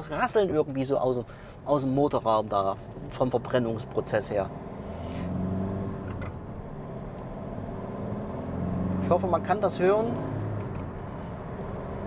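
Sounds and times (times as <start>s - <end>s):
diesel engine accelerating: 3.0s - 12.0s.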